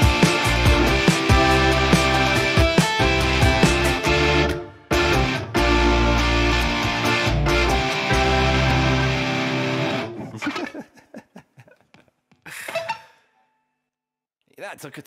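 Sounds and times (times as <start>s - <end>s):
drums and bass: 0.0s - 9.1s
electric guitar playing: 0.0s - 10.6s.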